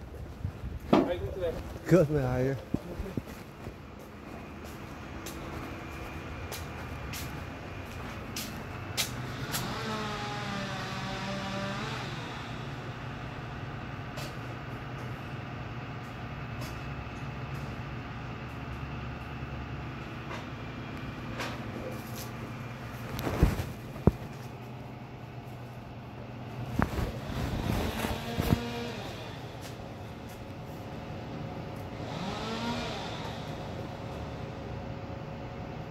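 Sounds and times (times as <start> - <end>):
low mechanical hum: 0.0 - 35.9.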